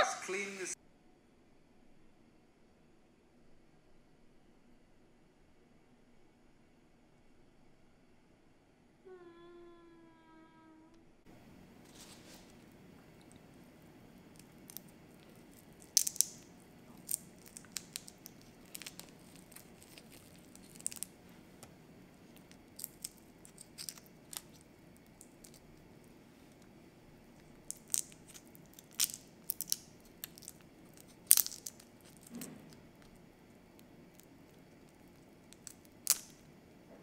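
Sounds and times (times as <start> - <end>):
faint low hum: 0.0 - 37.0
cling film crinkling: 11.8 - 36.8
shrimp shells crackling: 11.9 - 36.6.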